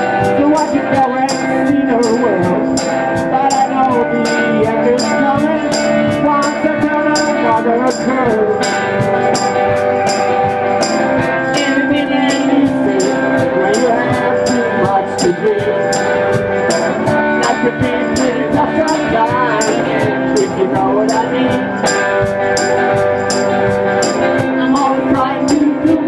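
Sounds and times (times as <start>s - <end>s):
blues band playing: 0.0s - 26.0s
high percussion beat: 0.0s - 26.0s.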